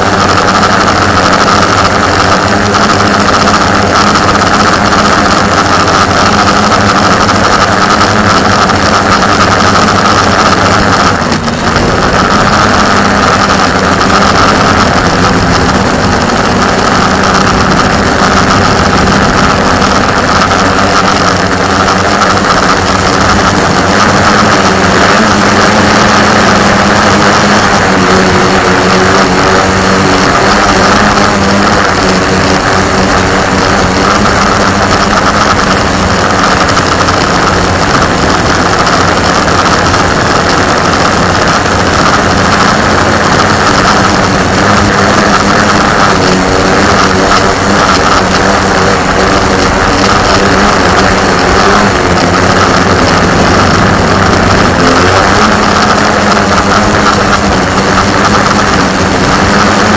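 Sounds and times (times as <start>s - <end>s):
drone motors whine and buzz: 0.0s - 59.9s.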